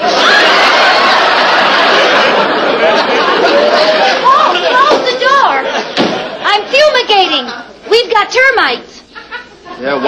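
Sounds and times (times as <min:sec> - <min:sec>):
studio audience laughing: 0:00.0 - 0:08.0, 0:09.0 - 0:10.0.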